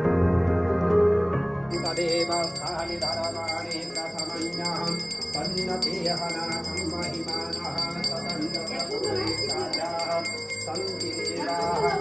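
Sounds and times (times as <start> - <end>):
hand bell ringing rapidly: 1.7 - 12.0
people singing: 1.8 - 12.0.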